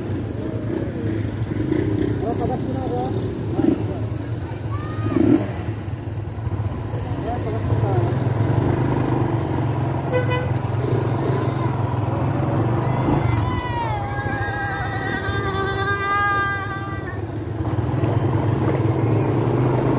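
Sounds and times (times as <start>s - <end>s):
motorcycle engines running: 0.0s - 19.9s.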